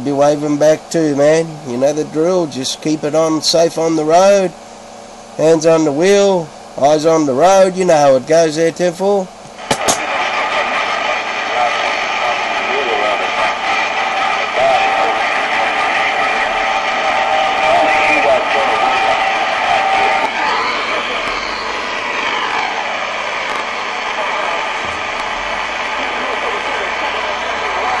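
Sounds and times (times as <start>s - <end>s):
radio static hiss: 0.0s - 28.0s
whistling heterodyne tones: 16.9s - 22.9s
faint garbled voices: 23.6s - 28.0s.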